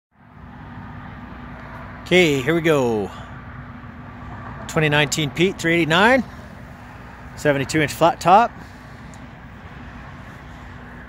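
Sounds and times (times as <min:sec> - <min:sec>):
low engine rumble: 0:00.2 - 0:11.0.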